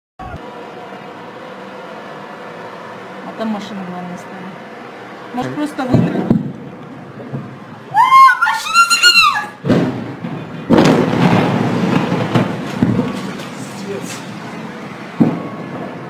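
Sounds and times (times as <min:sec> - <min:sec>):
explosion blast rumbling: 0:05.7 - 0:07.6, 0:09.6 - 0:16.0
sharp bang: 0:05.8 - 0:07.6, 0:09.6 - 0:14.4, 0:15.2 - 0:16.0
explosion thump: 0:05.9 - 0:06.6, 0:09.6 - 0:14.3, 0:15.2 - 0:16.0
person screaming: 0:07.9 - 0:09.6.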